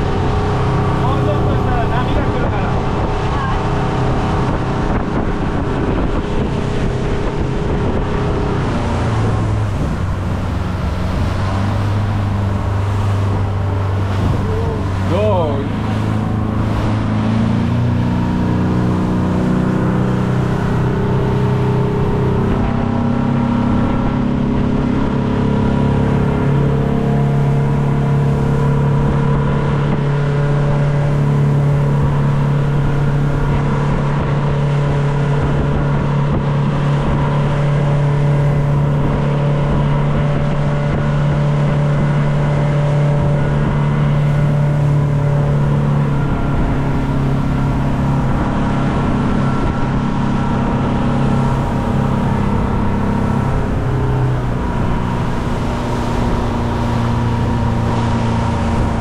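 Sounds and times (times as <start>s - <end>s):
motorboat engine running: 0.0s - 59.0s
rush of wind and water: 0.0s - 59.0s.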